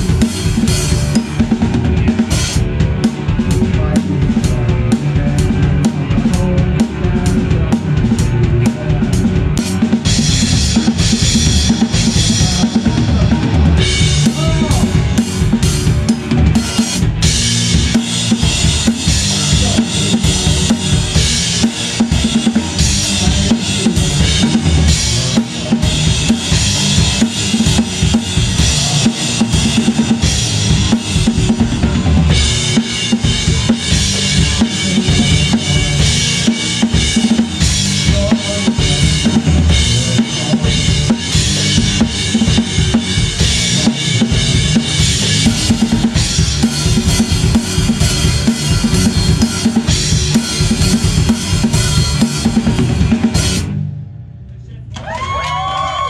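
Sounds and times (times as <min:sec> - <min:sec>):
drum kit kick snare and cymbals: 0:00.0 - 0:54.0.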